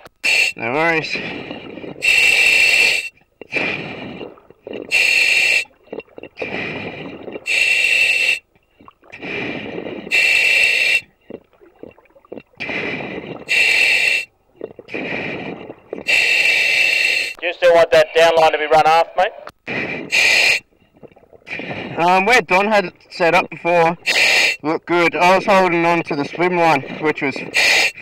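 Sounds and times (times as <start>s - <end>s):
regulator gas hissing: 0.0s - 5.7s, 6.4s - 8.4s, 9.2s - 11.1s, 12.6s - 17.5s, 20.0s - 20.6s, 24.0s - 24.7s, 25.8s - 28.0s
exhaled air bubbling: 0.0s - 18.0s, 19.6s - 28.0s.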